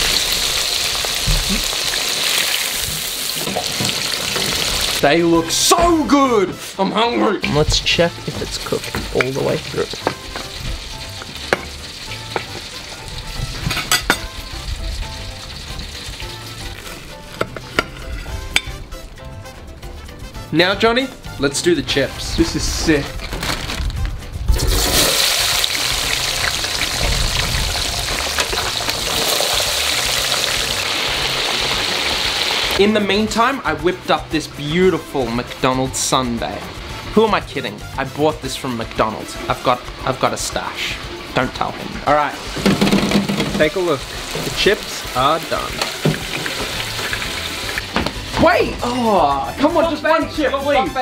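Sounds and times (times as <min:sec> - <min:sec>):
chips sizzling in deep fryer oil: 0:00.0 - 0:05.1, 0:08.1 - 0:17.3, 0:24.5 - 0:50.1.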